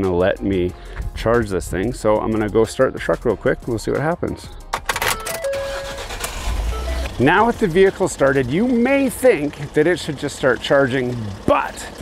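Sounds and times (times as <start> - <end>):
starter click: 4.7 - 7.2
truck engine starting: 4.8 - 12.0.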